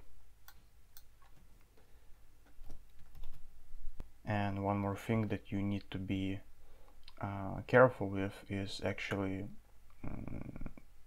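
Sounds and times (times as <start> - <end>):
computer keyboard keystrokes: 2.5 - 3.4.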